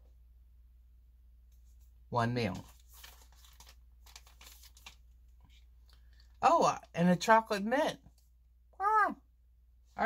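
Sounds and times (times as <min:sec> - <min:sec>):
sample packets crinkling: 0:02.5 - 0:06.4.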